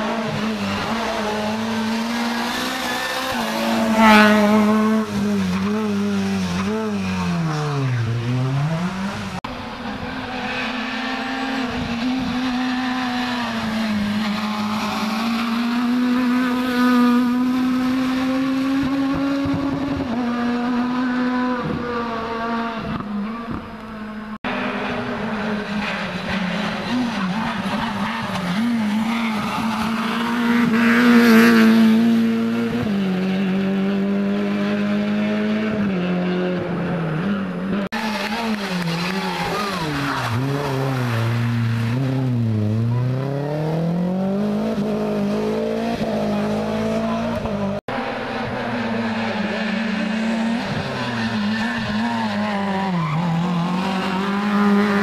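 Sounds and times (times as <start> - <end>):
car approaching: 0.0 - 55.0
rally car engines revving: 0.0 - 55.0.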